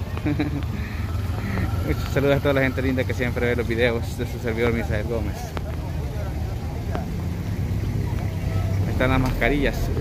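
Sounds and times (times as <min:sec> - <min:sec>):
faint voices: 0:00.0 - 0:10.0
vehicle engine rumbling: 0:00.0 - 0:10.0.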